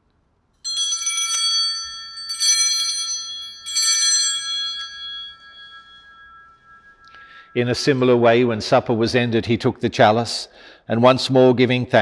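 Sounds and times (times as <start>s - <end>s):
small altar bells ringing: 0.6s - 9.6s.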